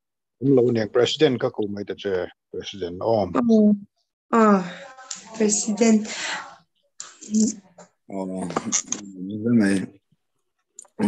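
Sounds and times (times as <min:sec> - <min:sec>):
person speaking over video call: 0:07.0 - 0:10.2.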